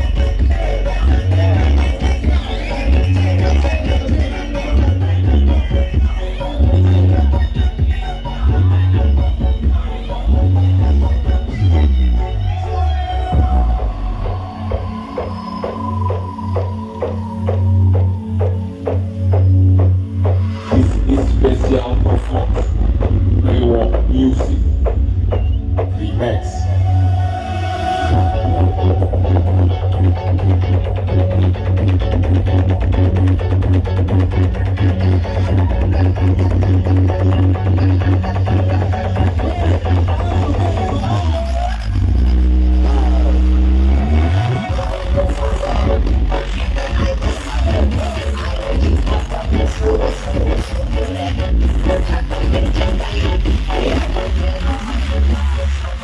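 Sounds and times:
deep bass from sound system: 0.0s - 56.0s
loud electronic dance music: 0.0s - 56.0s
deep held bass note: 20.7s - 27.4s, 28.1s - 35.0s.

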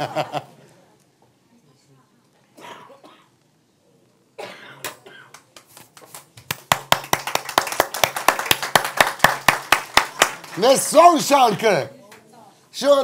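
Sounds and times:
person coughing: 4.4s - 5.4s
hands clapping: 4.8s - 11.0s.

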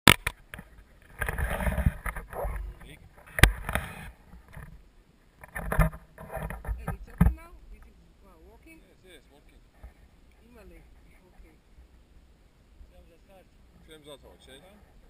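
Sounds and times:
rustling of jackets and straps: 0.6s - 4.8s.

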